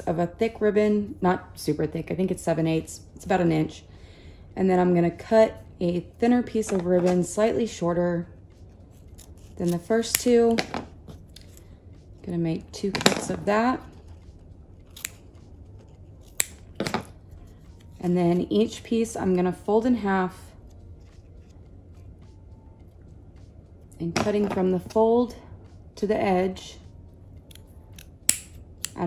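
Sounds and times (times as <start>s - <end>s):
scissors snipping ribbon: 9.1s - 10.6s, 14.9s - 15.2s, 15.8s - 16.7s, 27.5s - 29.0s.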